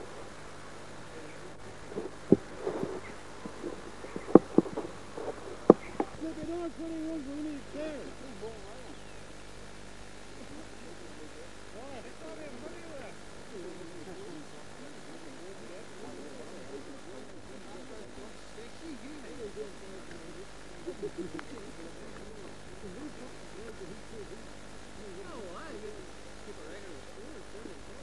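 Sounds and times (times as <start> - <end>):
distant voices calling and chatting: 0.0 - 28.0
steady low hum: 0.0 - 28.0.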